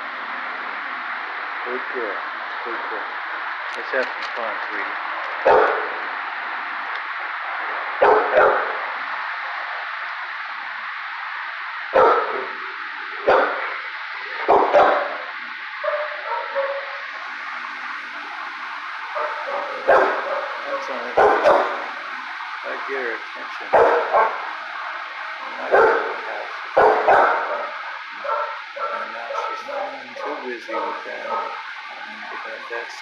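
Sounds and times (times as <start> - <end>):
background hiss: 0.0 - 33.0
dogs barking: 5.4 - 6.0, 7.9 - 9.0, 11.9 - 12.6, 13.2 - 17.1, 19.1 - 22.0, 23.4 - 32.7.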